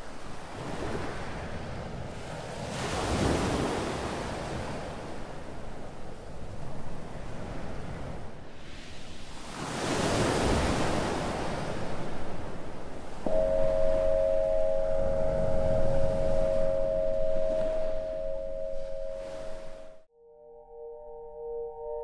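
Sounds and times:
ocean waves washing in: 0:00.0 - 0:20.0
crystal singing bowl ringing: 0:13.3 - 0:22.0.

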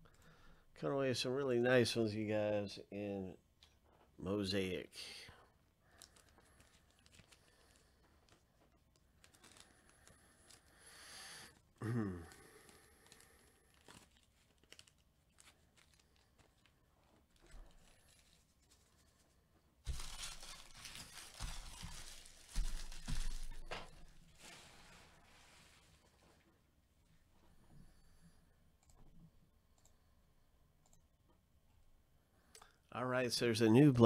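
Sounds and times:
plastic packaging crinkling and tearing: 0:05.9 - 0:10.8, 0:12.2 - 0:19.2, 0:19.8 - 0:25.4.

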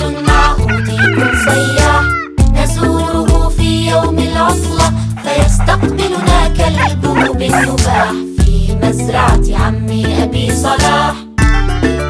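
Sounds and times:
children's song with beat: 0:00.0 - 0:12.0
chicken call sound effect: 0:00.7 - 0:02.4, 0:05.2 - 0:08.2.

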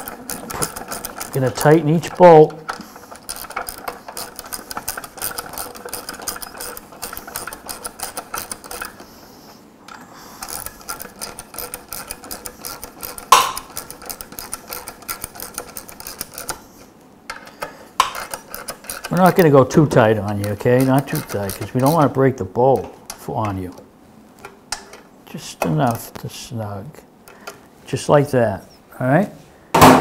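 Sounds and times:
socket ratchet clicking: 0:00.0 - 0:09.1, 0:10.4 - 0:16.6, 0:17.3 - 0:23.8.

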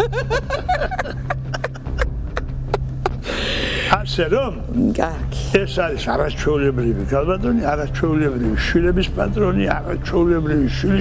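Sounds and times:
man laughing: 0:00.0 - 0:03.4.

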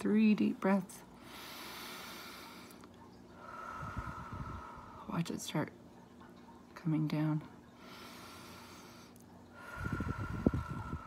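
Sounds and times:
woman breathing deeply: 0:01.2 - 0:02.8, 0:03.4 - 0:05.1, 0:07.8 - 0:11.0.

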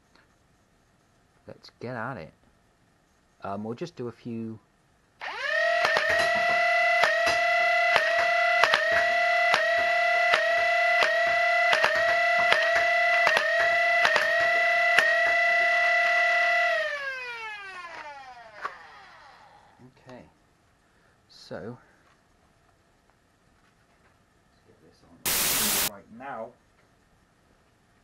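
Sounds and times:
toy blaster darts firing: 0:05.2 - 0:19.3
flywheel motors whining: 0:05.2 - 0:19.6.

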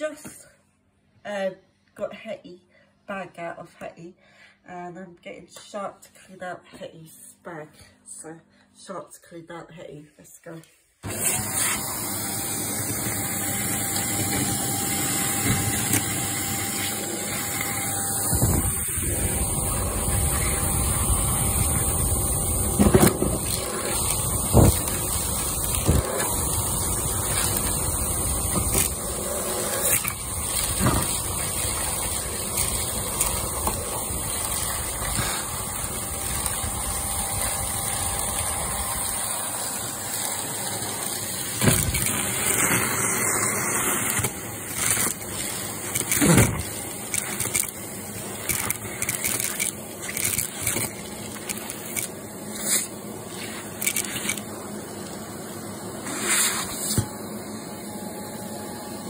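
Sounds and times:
vacuum cleaner running: 0:11.0 - 0:59.0
debris clicking up vacuum wand: 0:13.8 - 0:38.5, 0:41.1 - 0:43.0, 0:43.8 - 0:54.5.

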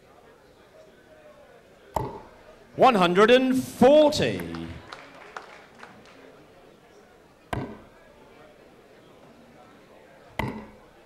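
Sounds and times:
quiet hall ambience: 0:00.0 - 0:11.0.

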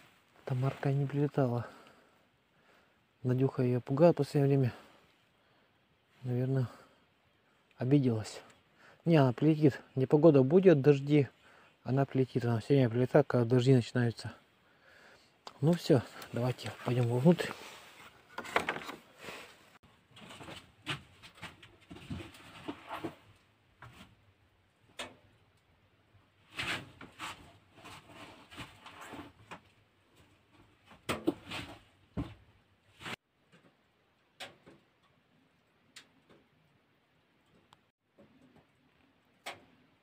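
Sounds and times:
knocks clicks and rustles: 0:18.2 - 0:19.2.

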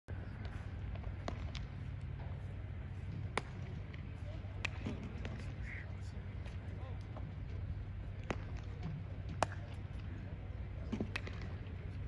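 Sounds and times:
faint distant voices: 0:00.1 - 0:12.0
steady low rumble: 0:00.1 - 0:12.0
baseball striking bat and glove: 0:00.3 - 0:02.4, 0:03.0 - 0:05.6, 0:08.1 - 0:10.0, 0:10.8 - 0:11.8.

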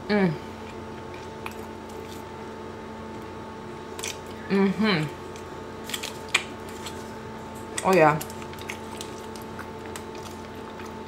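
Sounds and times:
steady low hum: 0:00.0 - 0:11.0
chewing: 0:00.6 - 0:02.4, 0:03.9 - 0:11.0.

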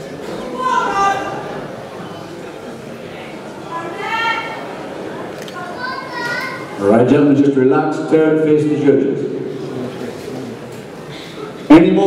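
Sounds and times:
crowd hubbub: 0:00.0 - 0:12.0
audience shouting in high voices: 0:00.4 - 0:01.7.

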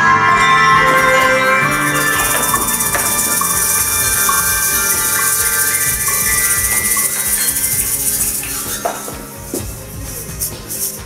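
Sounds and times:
glockenspiel notes: 0:00.0 - 0:10.4
egg shakers rattling: 0:01.9 - 0:11.0.

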